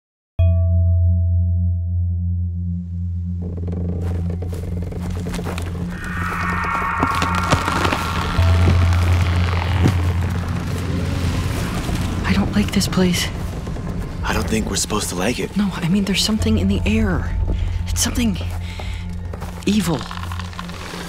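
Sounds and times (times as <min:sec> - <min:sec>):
deep held low note: 0:00.4 - 0:12.2
crackling texture: 0:02.9 - 0:21.0.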